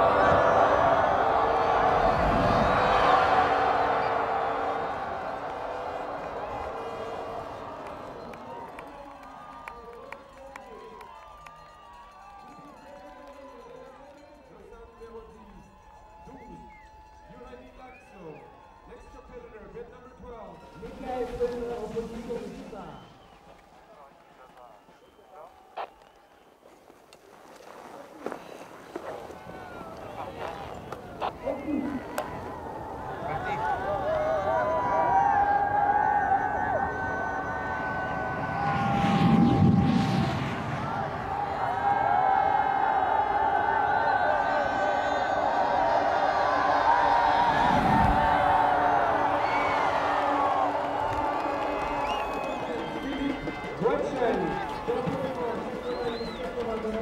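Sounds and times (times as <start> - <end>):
crowd cheering and shouting: 0.0 - 26.4, 27.7 - 57.0.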